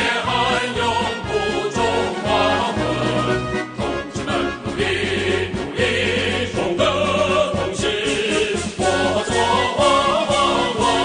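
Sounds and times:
group singing in unison: 0.0s - 11.0s
music accompaniment: 0.0s - 11.0s.

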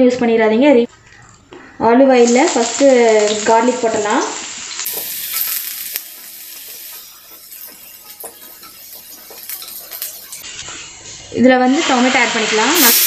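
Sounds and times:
garlic sizzling in hot oil: 2.2s - 13.0s.

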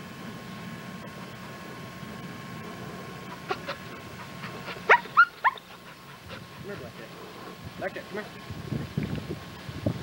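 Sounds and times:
dog yelping: 3.3s - 6.2s.

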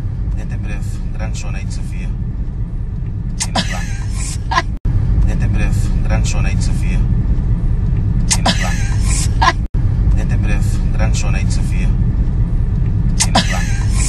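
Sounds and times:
car interior rumble: 0.0s - 14.0s
voices: 3.4s - 7.1s, 8.3s - 12.0s, 13.2s - 14.0s.

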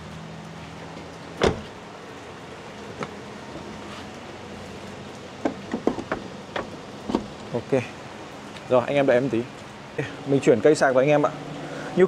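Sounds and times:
dull thump: 1.4s - 1.7s.

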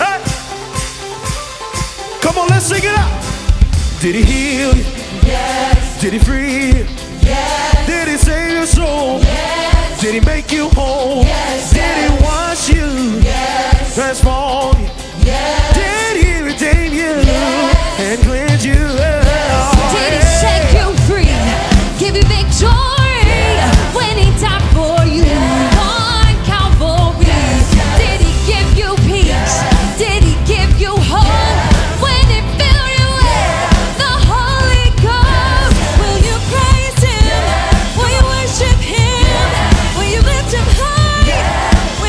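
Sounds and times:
band playing steady beat: 0.0s - 42.0s
lead singer singing: 4.0s - 42.0s
backing singers answering: 19.0s - 22.2s.

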